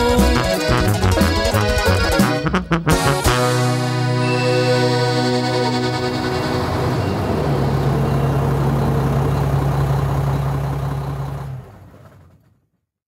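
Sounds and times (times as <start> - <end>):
truck engine droning: 3.3 - 12.5.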